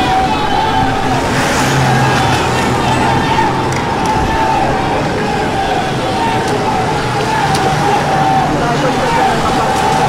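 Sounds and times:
cars driving past: 0.0s - 10.0s
tyres on road: 0.0s - 10.0s.

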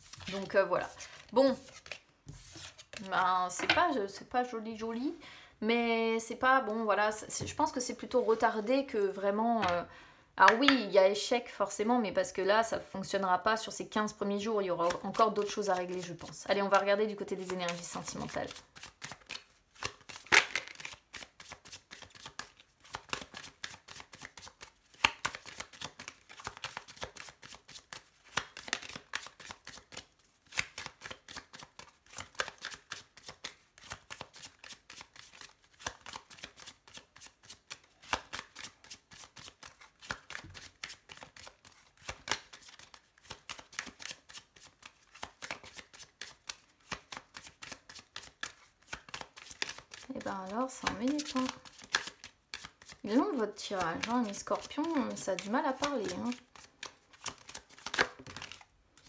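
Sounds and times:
cards shuffled by hand: 0.0s - 3.2s, 14.8s - 59.0s.

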